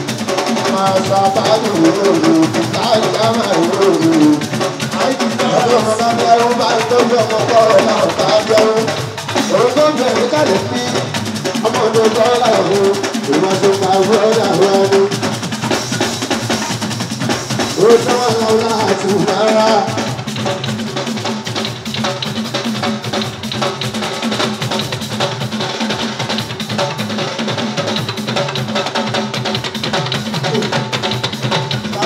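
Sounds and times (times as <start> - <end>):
hand drums and percussion: 0.0 - 32.0
man singing through microphone: 5.0 - 9.0.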